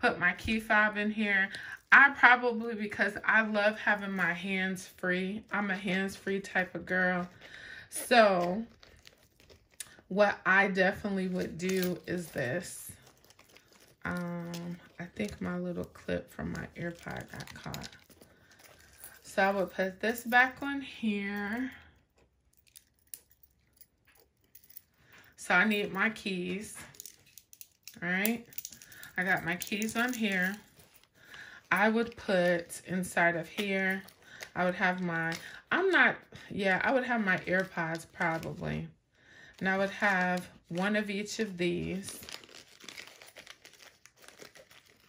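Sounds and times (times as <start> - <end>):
plastic packets crinkling: 2.8 - 20.5, 21.6 - 36.1, 36.9 - 38.8, 39.4 - 45.0
metal clip and key ring clinking: 11.6 - 12.4, 22.5 - 25.8, 26.9 - 31.1.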